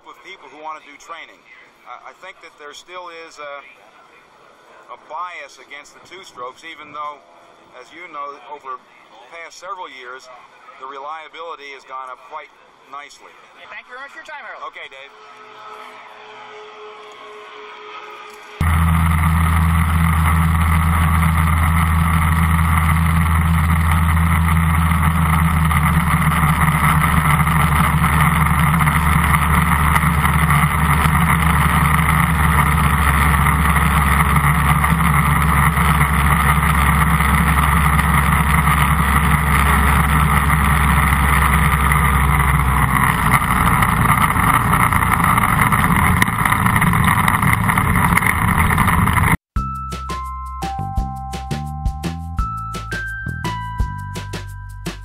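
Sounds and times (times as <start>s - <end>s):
ultralight engine and propeller drone: 15.8s - 49.4s.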